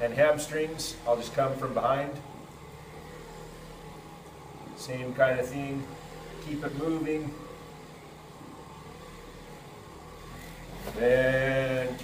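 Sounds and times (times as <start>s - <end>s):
electric buffer motor humming: 0.0s - 12.0s.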